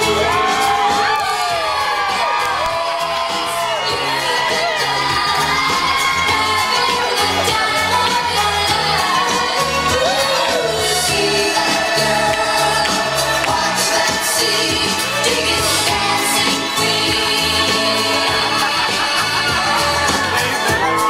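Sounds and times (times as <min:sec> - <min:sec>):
crowd cheering and whooping: 0:00.0 - 0:21.0
dance music with steady beat: 0:00.0 - 0:21.0
people clapping along: 0:00.0 - 0:21.0.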